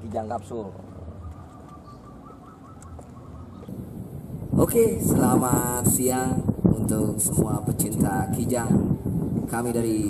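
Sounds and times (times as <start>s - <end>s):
low outdoor rumble: 0.0s - 10.0s
bird calling faintly: 1.1s - 3.7s.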